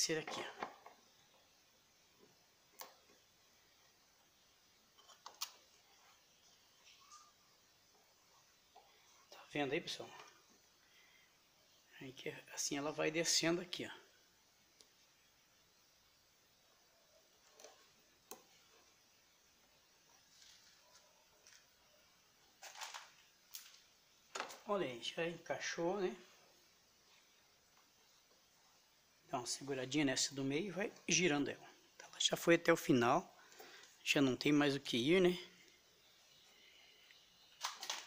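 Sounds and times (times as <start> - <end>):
faint hiss: 0.0 - 38.0.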